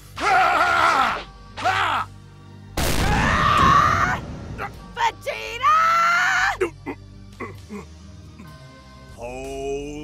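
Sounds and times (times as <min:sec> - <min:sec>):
low music bed: 0:04.2 - 0:10.0.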